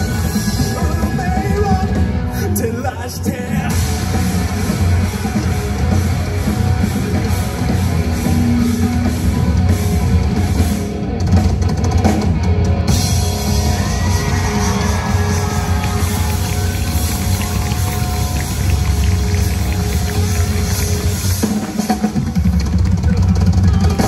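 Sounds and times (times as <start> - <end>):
live rock band playing: 0.0 - 24.0.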